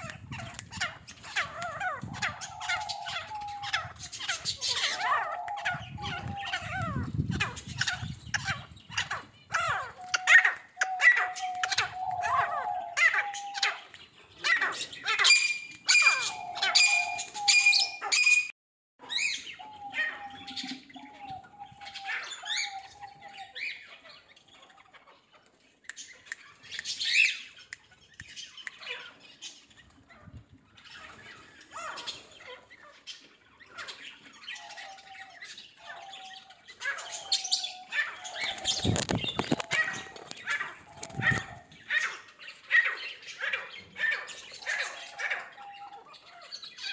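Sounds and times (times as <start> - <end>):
birds chirping and squawking: 0.0 - 46.9.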